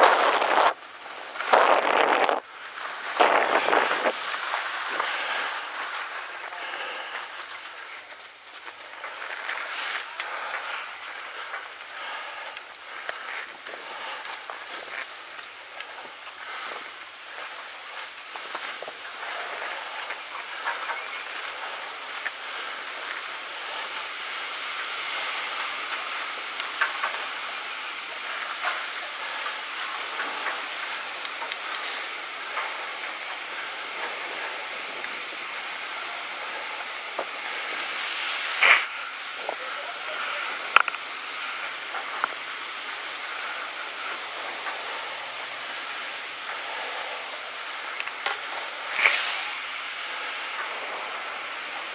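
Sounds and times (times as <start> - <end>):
chairlift machinery hissing: 0.0 - 51.9.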